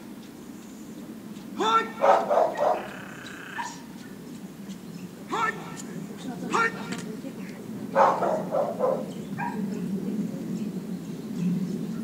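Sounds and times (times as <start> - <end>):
dog barking: 1.8 - 3.9, 7.9 - 9.6.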